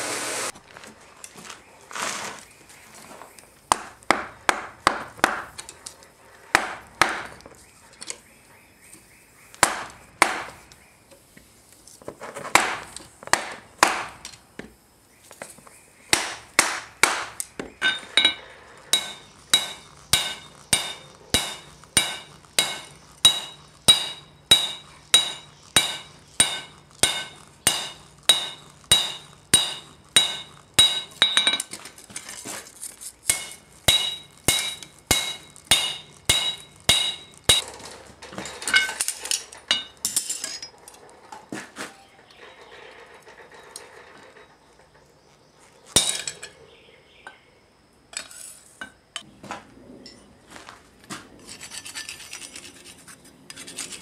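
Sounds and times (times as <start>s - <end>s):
hammer ringing on anvil: 17.8s - 31.7s, 33.3s - 37.6s
metal clinks: 17.8s - 32.4s.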